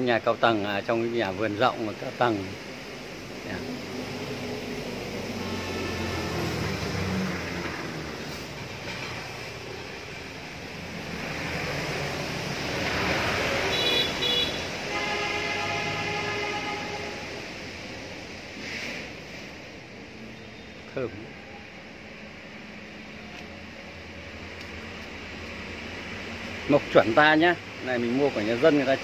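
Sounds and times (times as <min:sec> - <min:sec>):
vehicle passing: 0:01.1 - 0:20.3
horn blasts: 0:13.7 - 0:17.5.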